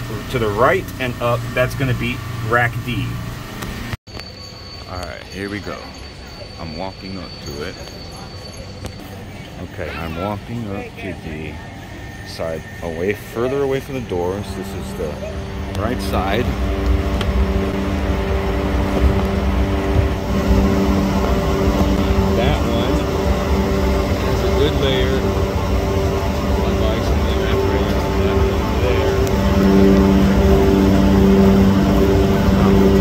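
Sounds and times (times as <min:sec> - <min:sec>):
freezer fans droning: 0:00.0 - 0:33.0.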